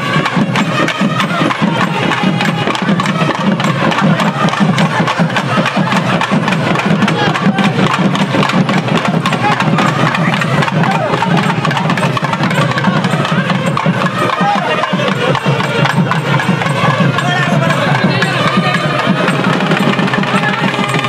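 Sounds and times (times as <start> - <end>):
crowd voices: 0.0 - 21.0
rapid hand drumming: 0.0 - 21.0.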